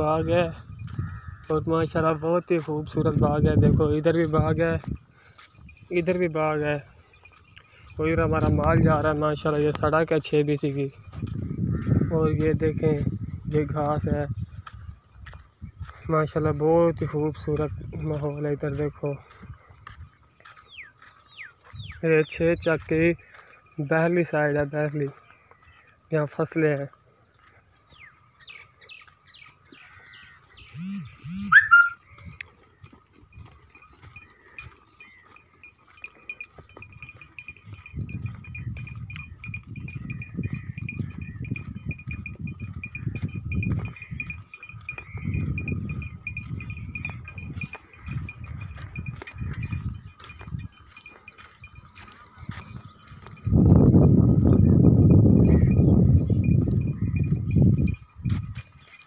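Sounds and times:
wind on microphone: 0:00.0 - 0:01.8, 0:02.8 - 0:06.0, 0:07.2 - 0:10.0, 0:10.8 - 0:20.2, 0:36.5 - 0:59.0.

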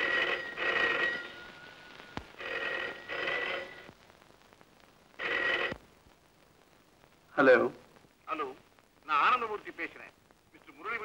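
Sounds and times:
telephone bell ringing: 0:00.0 - 0:03.9, 0:05.2 - 0:05.8.

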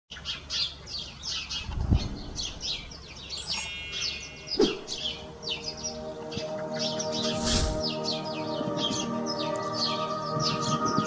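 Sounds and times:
bird chirping: 0:00.1 - 0:11.0
short ringing tone: 0:03.4 - 0:05.0.

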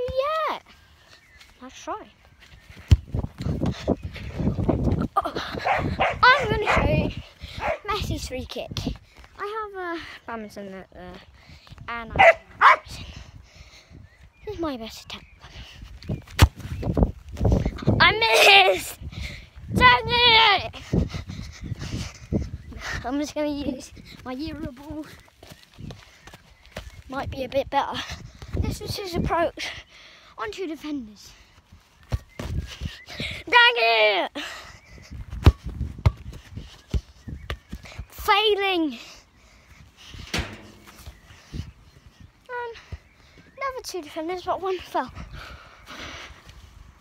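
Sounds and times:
wind on microphone: 0:02.6 - 0:09.1, 0:11.2 - 0:26.1, 0:26.9 - 0:29.7, 0:34.7 - 0:38.2, 0:39.8 - 0:43.0
football kicked: 0:16.3 - 0:16.7, 0:35.3 - 0:37.6, 0:40.3 - 0:41.2
ball thumping: 0:35.4 - 0:36.3, 0:40.3 - 0:41.1
dull thumps: 0:40.2 - 0:41.1.

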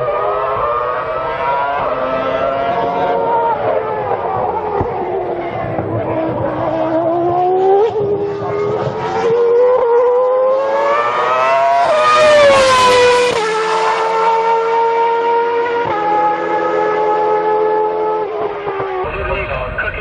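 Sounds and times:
racing car engine revving: 0:00.0 - 0:20.0.

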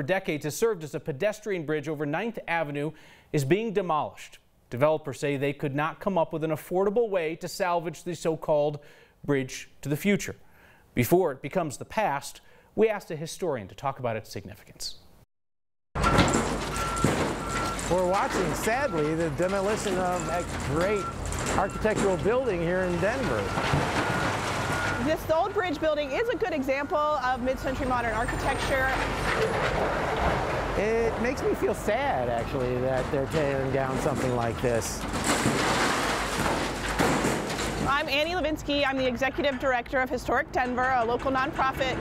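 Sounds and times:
reversing alarm beeping: 0:16.0 - 0:29.4
excavator demolishing building: 0:16.0 - 0:42.0
heavy equipment rumbling: 0:16.0 - 0:42.0.

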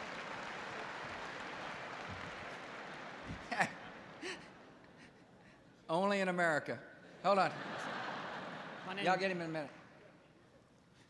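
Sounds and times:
man speaking: 0:08.9 - 0:09.8.

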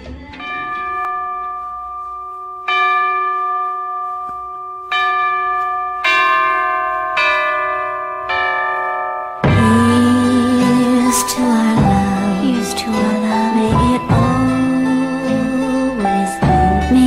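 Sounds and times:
bell-like chimes: 0:00.3 - 0:17.0
pop band playing: 0:09.5 - 0:17.0.

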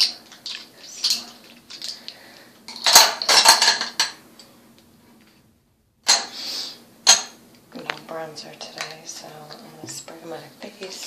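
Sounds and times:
containers clattering on tabletop: 0:02.7 - 0:04.2.

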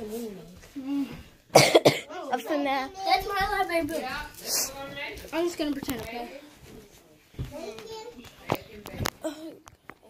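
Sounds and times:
person coughing: 0:01.5 - 0:02.1.

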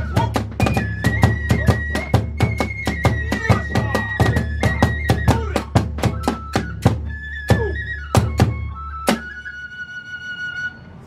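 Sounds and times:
large taiko drum strokes: 0:00.0 - 0:08.6
bamboo flute high note: 0:00.0 - 0:11.0.

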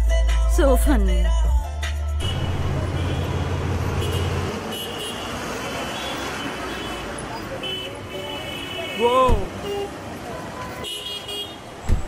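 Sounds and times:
road traffic noise: 0:01.9 - 0:12.0
car engine humming: 0:02.2 - 0:05.3.

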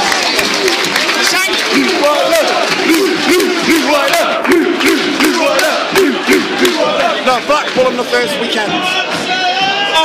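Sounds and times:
football supporters chanting: 0:01.5 - 0:10.0.

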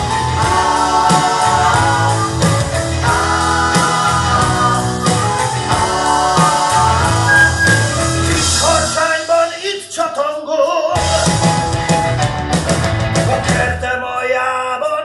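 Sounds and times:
rock band music: 0:00.0 - 0:09.0, 0:11.0 - 0:13.8.

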